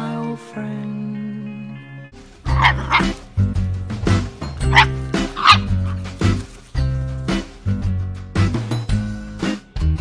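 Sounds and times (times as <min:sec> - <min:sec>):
background music with bass line: 0:00.0 - 0:10.0
puppy yipping: 0:02.5 - 0:03.2, 0:04.6 - 0:06.4.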